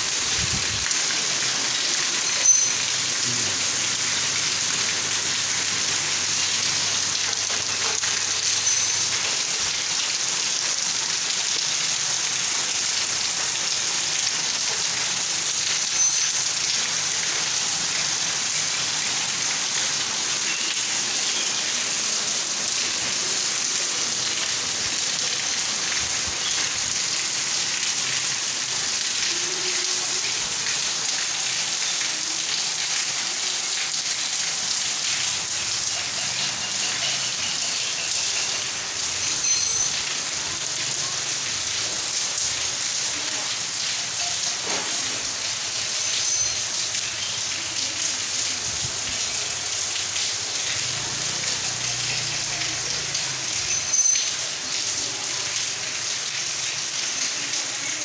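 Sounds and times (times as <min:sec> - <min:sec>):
heavy rain falling: 0:00.0 - 0:58.0.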